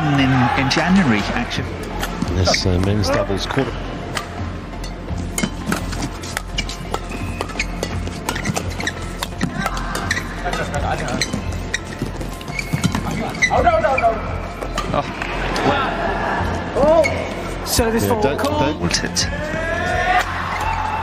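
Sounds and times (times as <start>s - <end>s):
racquets hitting shuttlecock: 4.1s - 13.4s
shoes squeaking on court: 5.3s - 15.1s.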